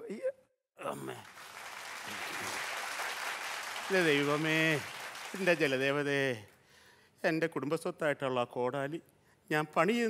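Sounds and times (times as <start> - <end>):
audience applauding: 1.1 - 6.2.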